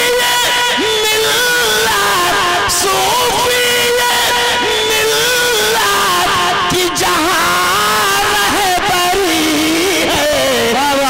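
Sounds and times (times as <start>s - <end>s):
man singing through loudspeaker: 0.0s - 11.0s.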